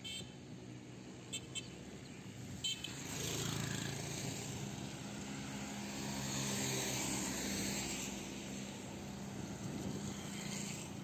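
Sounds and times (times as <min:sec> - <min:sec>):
tyres hissing on wet road: 0:05.4 - 0:11.0.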